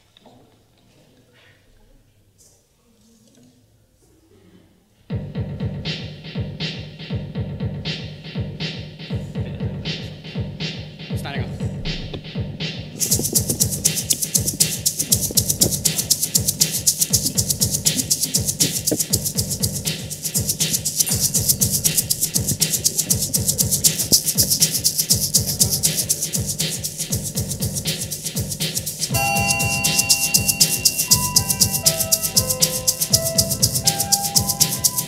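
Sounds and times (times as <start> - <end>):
egg shaker rhythm: 12.9 - 35.0
keyboard: 12.9 - 35.0.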